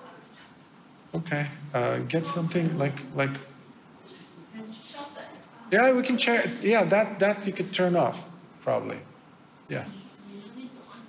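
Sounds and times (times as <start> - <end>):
person speaking: 1.1 - 4.5, 5.5 - 11.0.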